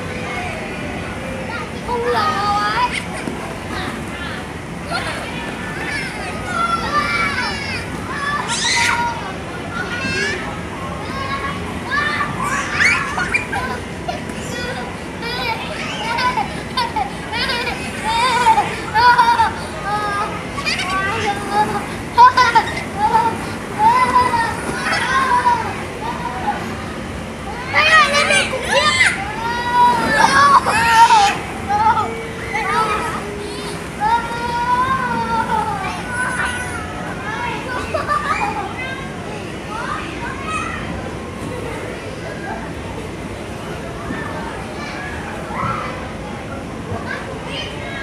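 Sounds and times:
steady background noise: 0:00.0 - 0:48.0
children calling out and squealing: 0:04.9 - 0:42.6, 0:44.0 - 0:48.0.

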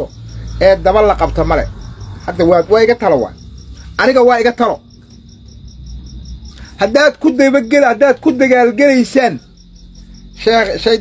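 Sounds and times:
man talking: 0:00.0 - 0:04.8, 0:06.8 - 0:09.4, 0:10.4 - 0:11.0
insect chirping: 0:00.0 - 0:11.0.

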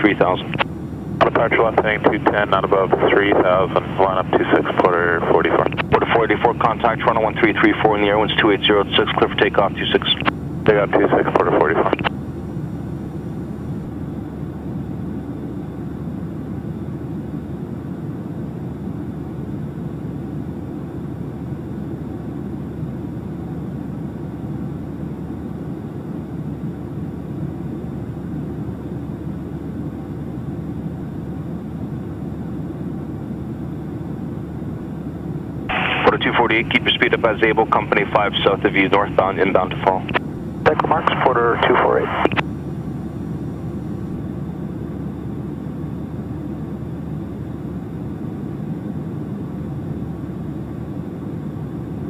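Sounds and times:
propeller plane engine drone: 0:00.0 - 0:52.0.

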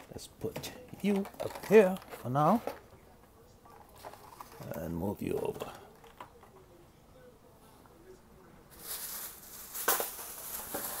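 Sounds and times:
sharp plastic crackle: 0:00.8 - 0:03.0, 0:03.7 - 0:06.5, 0:08.7 - 0:11.0
plastic packaging crinkling: 0:01.0 - 0:02.9, 0:03.7 - 0:06.5, 0:08.7 - 0:11.0.

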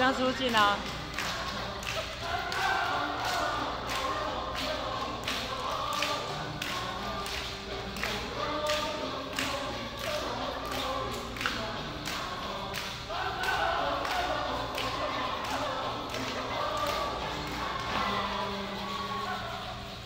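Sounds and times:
chorus of voices singing: 0:00.0 - 0:20.0.

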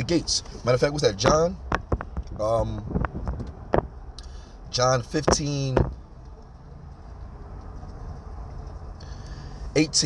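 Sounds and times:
car cabin rumble: 0:00.0 - 0:09.0.

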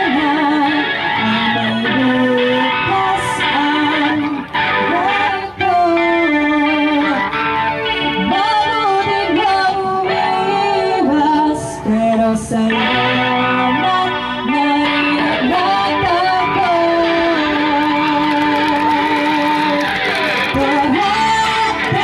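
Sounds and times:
woman singing: 0:00.0 - 0:07.3, 0:08.2 - 0:19.8, 0:20.5 - 0:22.0
electric guitar: 0:00.0 - 0:22.0.

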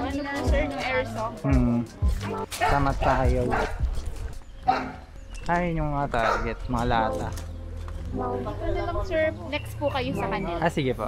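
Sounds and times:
people's voices: 0:00.0 - 0:04.2, 0:05.4 - 0:11.0
dog barking: 0:02.5 - 0:03.8, 0:04.6 - 0:05.0, 0:06.2 - 0:06.7.

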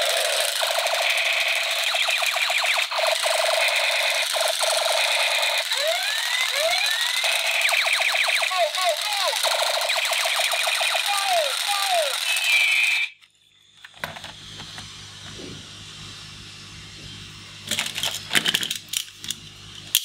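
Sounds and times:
falling laser zaps: 0:00.0 - 0:13.0
toy gun machine-gun rattles: 0:00.0 - 0:13.1
electronic alarm-like tone: 0:00.8 - 0:13.2.

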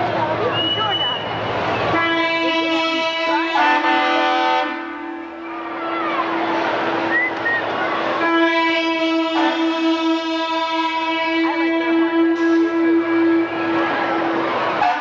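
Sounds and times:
truck air horn blasts: 0:01.9 - 0:06.4, 0:08.2 - 0:15.0.

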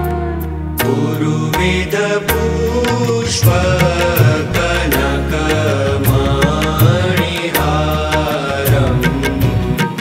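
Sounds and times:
sustained bass notes: 0:00.0 - 0:10.0
percussion strokes: 0:00.8 - 0:10.0.

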